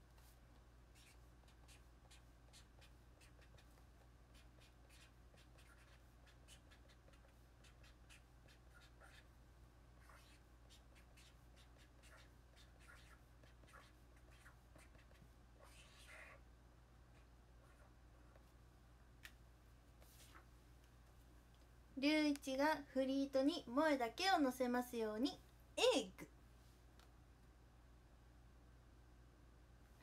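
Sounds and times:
low steady hum: 0.0 - 30.0
marker scratching on paper: 0.9 - 9.4, 10.0 - 16.4, 20.0 - 20.4.

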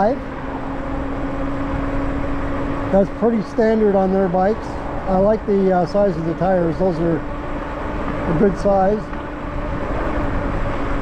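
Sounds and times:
electric motor hum: 0.0 - 11.0
tyres rolling on road: 0.0 - 11.0
wind buffeting microphone: 7.2 - 11.0.

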